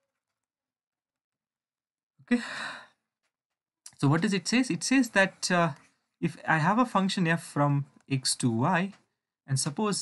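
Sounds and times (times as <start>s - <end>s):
person sighing: 2.2s - 3.0s.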